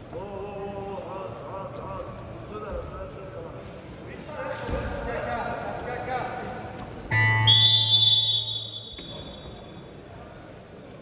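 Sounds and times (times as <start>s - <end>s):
scoreboard buzzer: 7.1s - 9.4s
shrill high tone: 7.1s - 9.5s.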